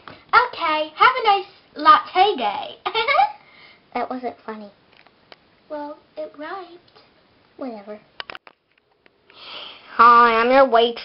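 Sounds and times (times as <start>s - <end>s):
person sniffing: 9.3s - 10.0s.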